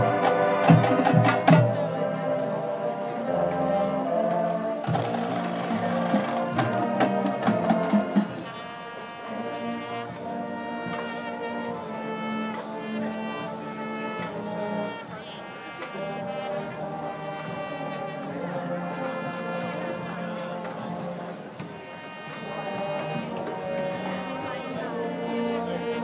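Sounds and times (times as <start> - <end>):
marching band brass: 0.0 - 26.0.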